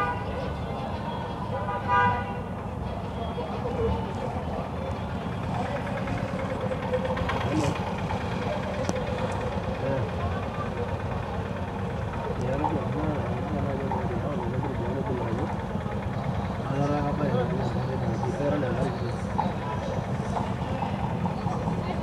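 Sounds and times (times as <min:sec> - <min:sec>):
vehicle engine idling: 0:00.0 - 0:22.0
voices talking: 0:00.0 - 0:22.0.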